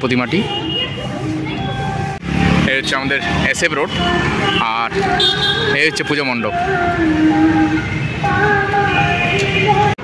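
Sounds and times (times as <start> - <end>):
people talking: 0.0 - 5.0
road traffic: 0.0 - 10.0.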